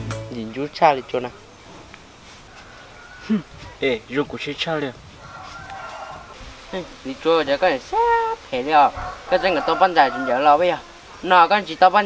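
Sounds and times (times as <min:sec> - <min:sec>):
young man talking: 0:00.0 - 0:01.4, 0:06.8 - 0:12.0.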